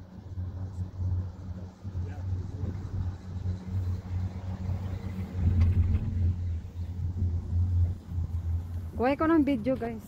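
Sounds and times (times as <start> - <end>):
gondola cabin rumbling on cable: 0.0 - 10.0.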